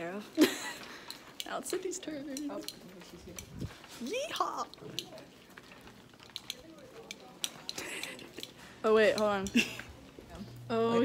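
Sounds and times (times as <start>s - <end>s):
distant chatter of voices: 0.9s - 11.0s.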